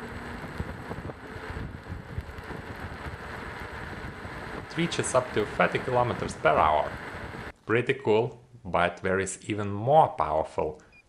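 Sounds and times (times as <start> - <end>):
tyre rumble on rough asphalt: 0.0 - 7.5
wind buffeting microphone: 0.0 - 7.5.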